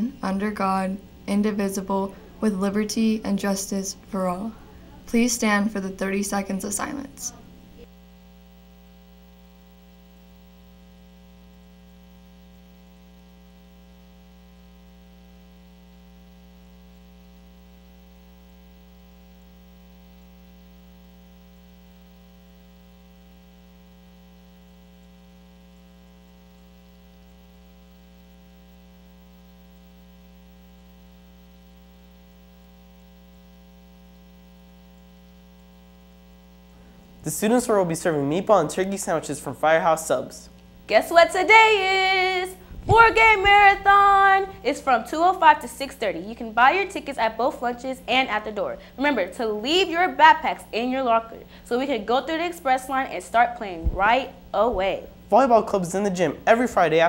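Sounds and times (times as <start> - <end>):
electrical mains hum: 0.0 - 57.0.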